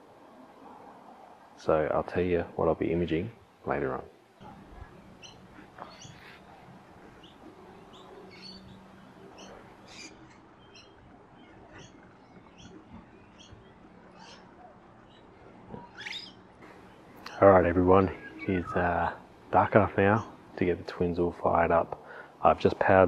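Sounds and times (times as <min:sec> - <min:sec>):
low steady hum: 0:00.0 - 0:23.0
birds chirping: 0:02.8 - 0:23.0.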